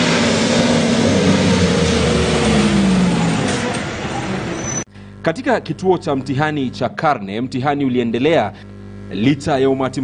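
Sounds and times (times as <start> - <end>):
heavy truck driving past: 0.0 - 4.8.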